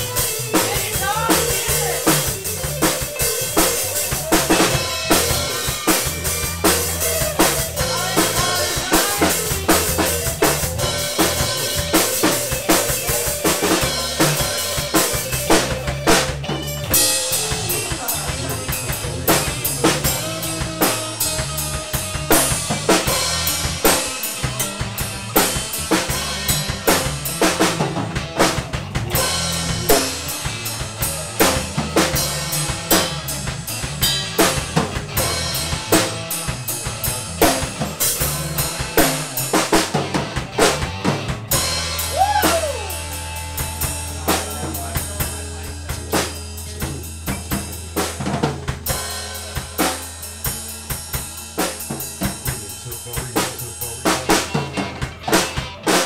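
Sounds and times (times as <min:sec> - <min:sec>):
drum kit beat: 0:00.0 - 0:56.0
rock band playing: 0:00.0 - 0:56.0.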